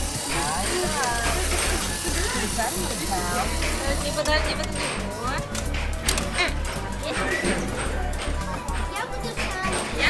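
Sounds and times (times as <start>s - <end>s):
arcade game music with low beat: 0.0s - 10.0s.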